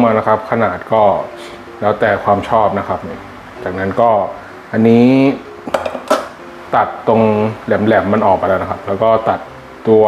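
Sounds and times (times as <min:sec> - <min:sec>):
metal bowl clattering: 0:05.7 - 0:06.4.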